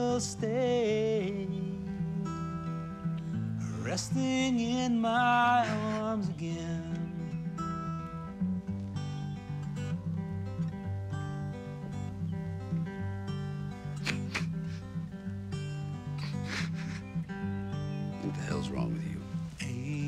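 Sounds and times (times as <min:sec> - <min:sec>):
acoustic guitar playing chords: 0:00.0 - 0:20.0.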